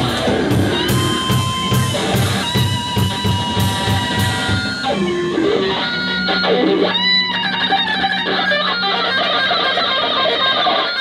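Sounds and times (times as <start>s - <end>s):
live rock band playing: 0.0s - 11.0s
wavering electric guitar line: 0.0s - 11.0s.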